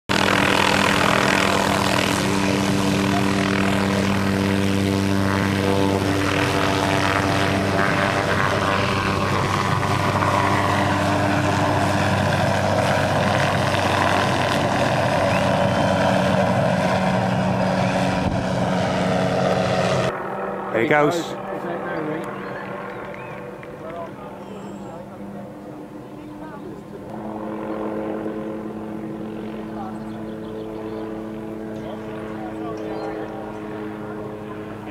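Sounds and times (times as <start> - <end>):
helicopter rotor and engine: 0.1 - 34.9.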